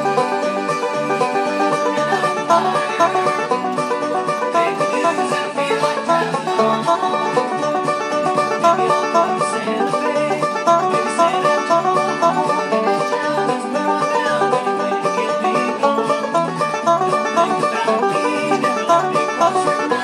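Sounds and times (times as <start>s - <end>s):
banjo picking: 0.0s - 20.0s.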